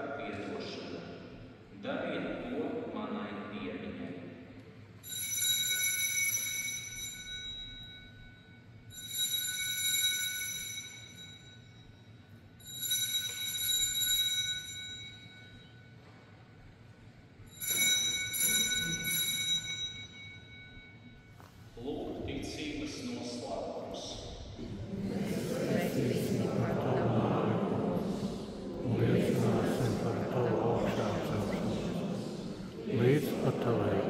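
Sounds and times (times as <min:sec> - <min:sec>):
altar bell ringing: 0:05.0 - 0:16.7, 0:17.3 - 0:22.2.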